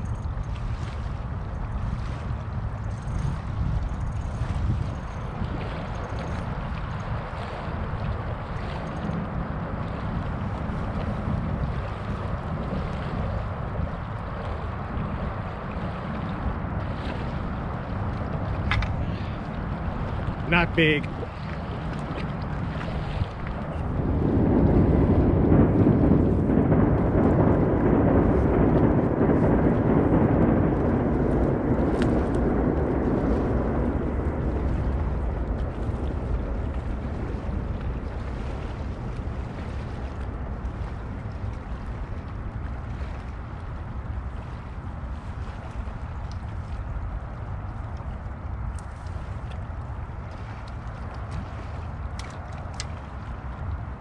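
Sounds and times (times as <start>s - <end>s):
water at the shore: 0.0s - 54.0s
wind: 0.0s - 54.0s.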